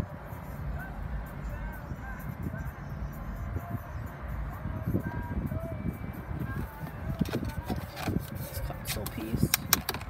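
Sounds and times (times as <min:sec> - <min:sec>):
song with vocals on car radio: 0:00.0 - 0:10.0
hand tapping plastic console: 0:07.1 - 0:10.0.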